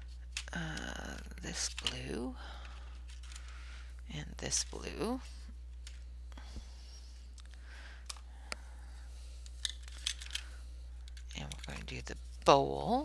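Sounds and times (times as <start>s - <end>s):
pencils clicking and tapping: 0.0s - 3.6s, 9.4s - 12.2s
steady low hum: 0.0s - 13.0s.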